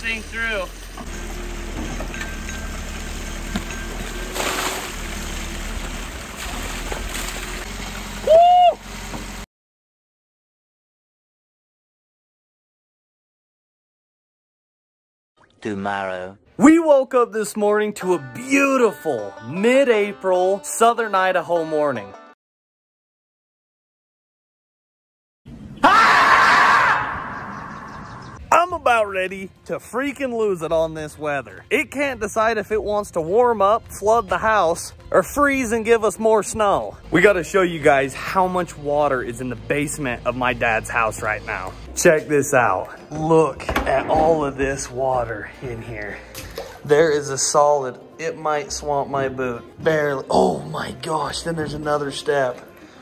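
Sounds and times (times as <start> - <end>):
shovel breaking snow and mud: 3.7 - 5.4
person whooping: 8.2 - 8.9, 25.8 - 27.4
marmot screaming: 25.8 - 28.4.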